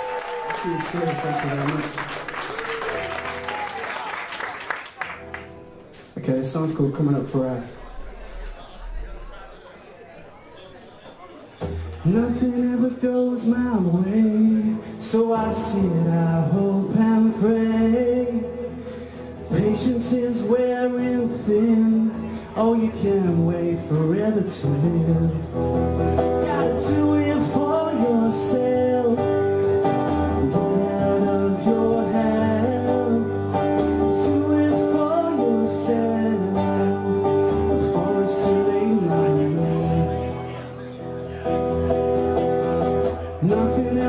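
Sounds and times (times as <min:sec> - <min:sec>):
acoustic guitar strumming: 0:11.6 - 0:44.0
man singing: 0:12.0 - 0:40.6, 0:43.3 - 0:44.0.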